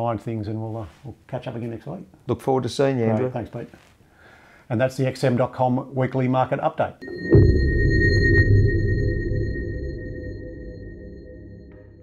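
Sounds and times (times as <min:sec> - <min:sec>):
high ping-like tone: 0:07.0 - 0:12.0
deep low rumble: 0:07.1 - 0:12.0.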